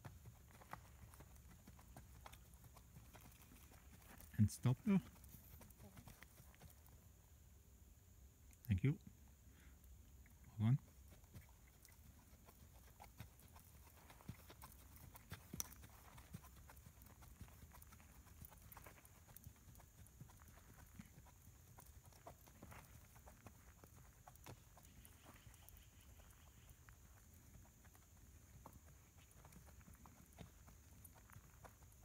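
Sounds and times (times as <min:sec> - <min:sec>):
horse hoofbeats on sand: 0:00.0 - 0:07.0, 0:10.8 - 0:32.0.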